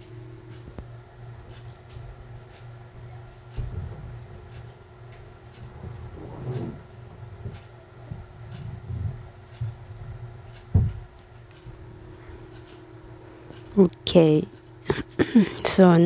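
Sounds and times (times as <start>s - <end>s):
fabric rustling: 5.7s - 7.4s.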